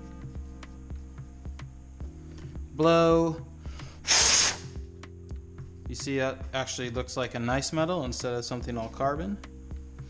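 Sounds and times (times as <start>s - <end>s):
compressed air burst: 3.8s - 4.8s.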